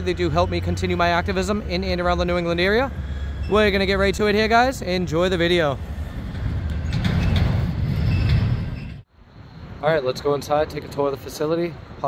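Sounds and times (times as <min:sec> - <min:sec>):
low street rumble: 0:00.0 - 0:12.0
street hiss: 0:02.2 - 0:12.0.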